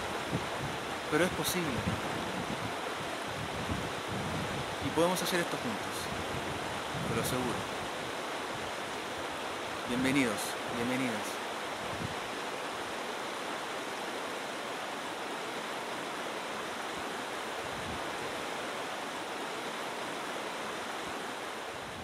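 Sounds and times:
stream rushing over rocks: 0.0 - 22.0.

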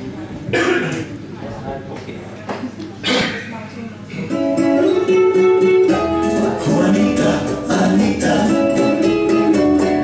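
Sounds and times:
person coughing: 0.5 - 1.1, 3.0 - 3.5.

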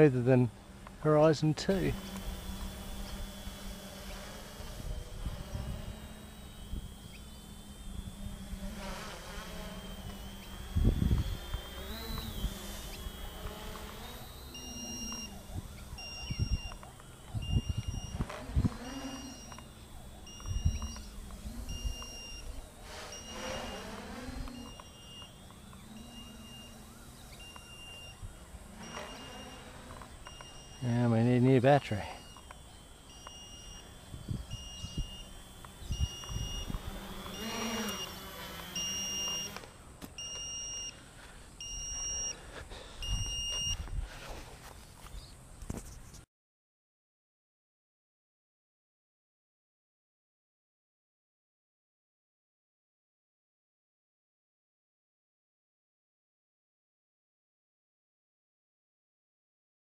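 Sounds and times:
steady beeping alarm: 0.0 - 44.3
drone motors buzzing: 0.0 - 46.2.

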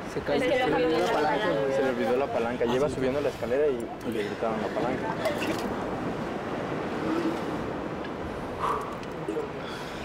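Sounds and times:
ocean surf: 0.0 - 10.0
wind: 0.0 - 10.0.

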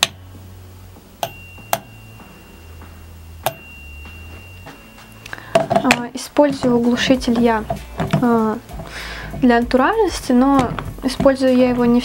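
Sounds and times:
thin steady high tone: 0.0 - 12.0.

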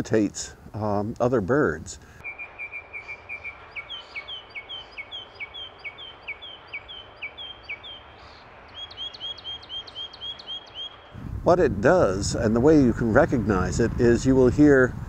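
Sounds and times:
mockingbird singing: 2.2 - 11.2.

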